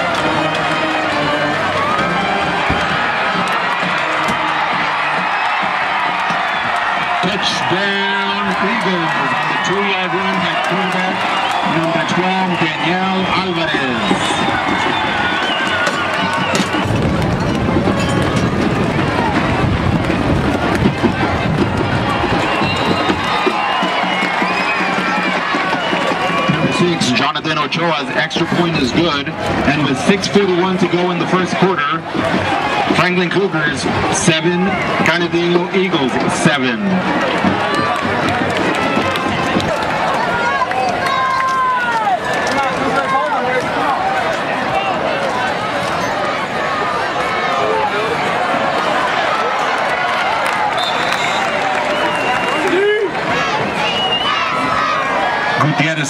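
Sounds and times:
music playing: 0:00.0 - 0:42.7
crowd talking and shouting: 0:00.0 - 0:56.0.

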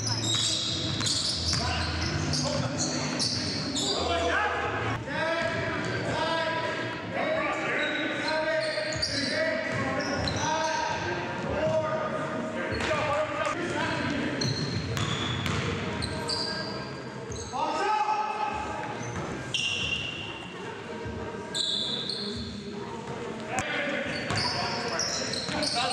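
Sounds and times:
sneakers squeaking: 0:00.0 - 0:06.2, 0:07.6 - 0:11.8, 0:12.7 - 0:13.3, 0:13.9 - 0:17.8, 0:18.5 - 0:20.5, 0:21.5 - 0:25.9.

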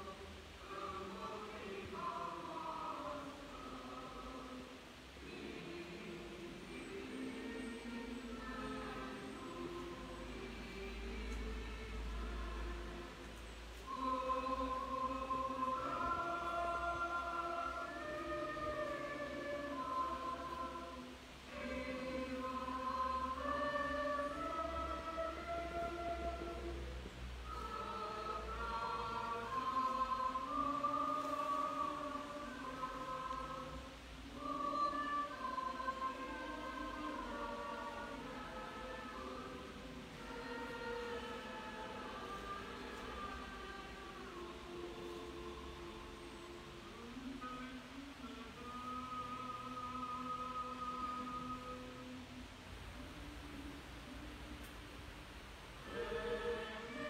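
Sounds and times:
choir chanting: 0:00.0 - 0:52.4, 0:55.8 - 0:57.0.

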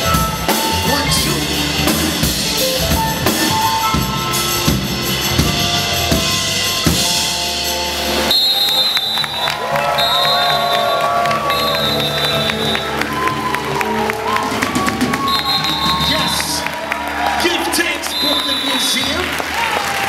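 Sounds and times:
live band hip-hop jazz groove: 0:00.0 - 0:08.3.

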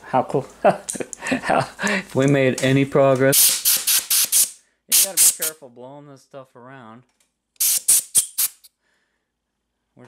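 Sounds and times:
compressed air blow gun blasts: 0:03.4 - 0:05.5, 0:07.6 - 0:08.7.

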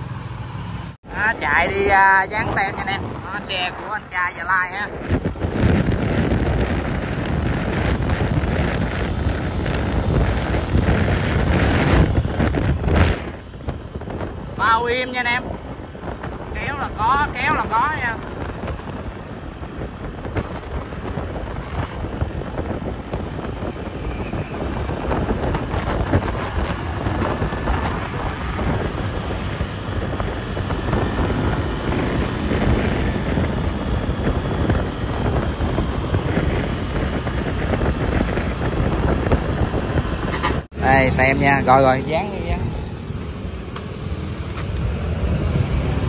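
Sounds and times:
road noise: 0:00.0 - 0:46.0
wind rushing over microphone: 0:00.0 - 0:46.0
motorcycle engine: 0:04.9 - 0:46.0.

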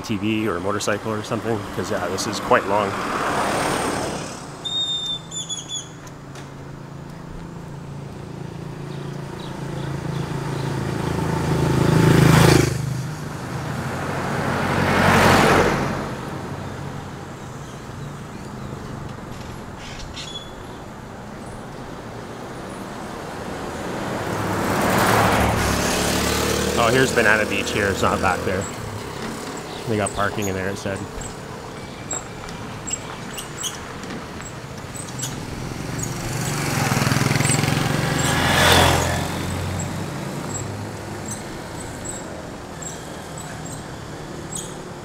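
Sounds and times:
cars driving past: 0:00.0 - 0:45.0.

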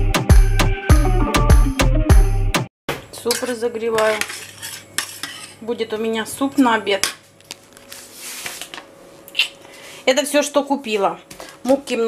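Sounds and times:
metal spoon stirring in a pot: 0:03.3 - 0:05.6.

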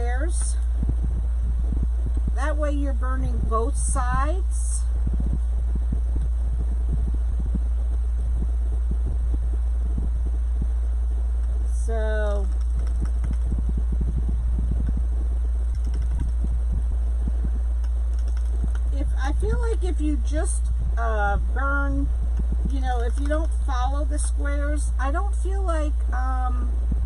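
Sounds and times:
wood burning tool crackling: 0:00.0 - 0:24.5
loud steady low hum: 0:00.0 - 0:27.0.

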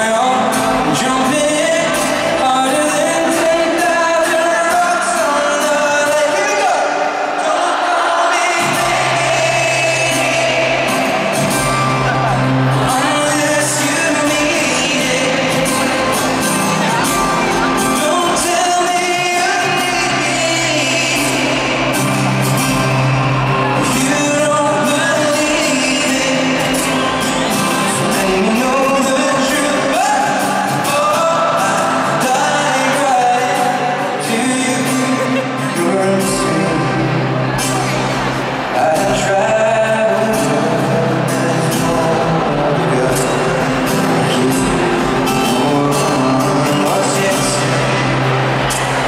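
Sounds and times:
acoustic guitar: 0:00.0 - 0:49.0
man singing: 0:00.0 - 0:49.0
audience shouting and whooping: 0:05.9 - 0:36.2, 0:46.8 - 0:49.0.

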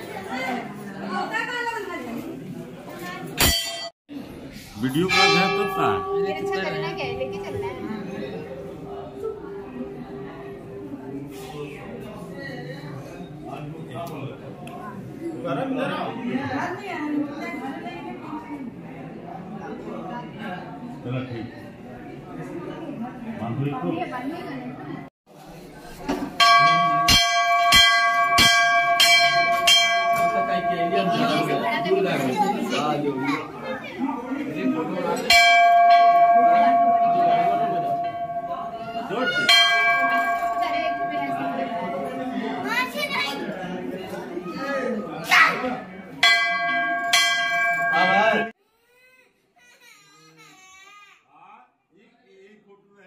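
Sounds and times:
people's voices: 0:04.1 - 0:48.5
temple bell ringing: 0:04.9 - 0:11.3, 0:26.4 - 0:33.0, 0:35.2 - 0:43.0, 0:46.2 - 0:48.6.

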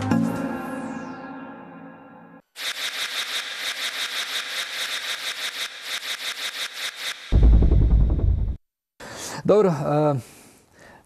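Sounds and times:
rapid even clicking: 0:02.6 - 0:07.4.

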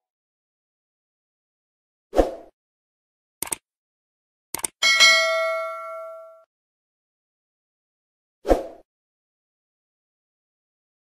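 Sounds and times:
bell ding: 0:04.8 - 0:06.5.

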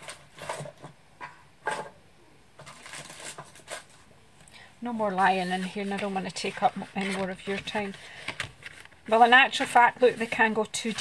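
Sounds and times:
woman speaking: 0:04.8 - 0:08.0, 0:09.1 - 0:11.0.

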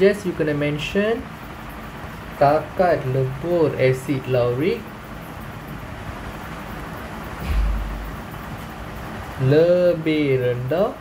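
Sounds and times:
rushing background noise: 0:04.6 - 0:09.7
short low rumble: 0:07.4 - 0:08.7.

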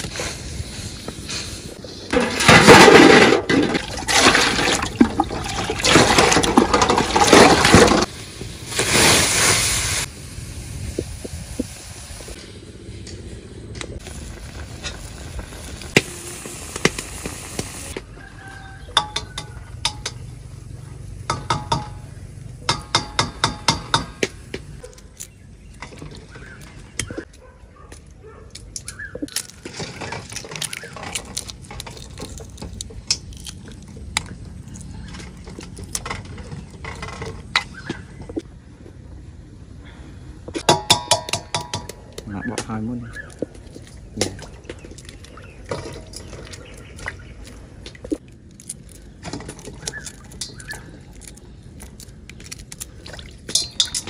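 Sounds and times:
water splashing in steel bowl: 0:03.6 - 0:08.1, 0:52.9 - 0:54.0
eggshell peeling crackle: 0:28.5 - 0:36.0, 0:43.1 - 0:54.0
eggshells cracking on steel bowl: 0:28.5 - 0:36.8, 0:43.1 - 0:54.0.

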